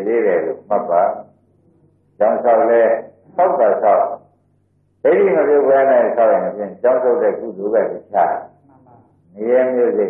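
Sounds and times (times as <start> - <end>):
man preaching: 0.0 - 1.3, 2.2 - 4.2, 5.1 - 8.5, 9.4 - 10.0.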